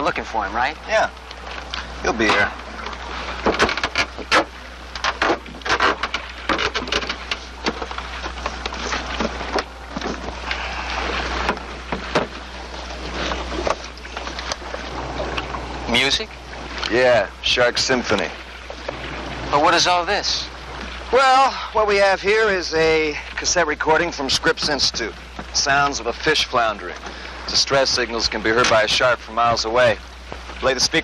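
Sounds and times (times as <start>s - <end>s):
steady low hum: 0.0s - 31.0s
clicks knocks and splashes: 1.1s - 15.7s, 26.5s - 30.8s.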